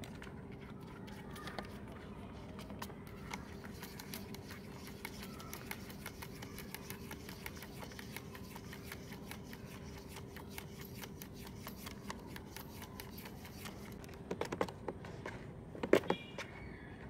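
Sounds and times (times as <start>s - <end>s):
faint steady hum: 0.0s - 17.0s
cat scratching in plastic carrier: 2.5s - 14.9s.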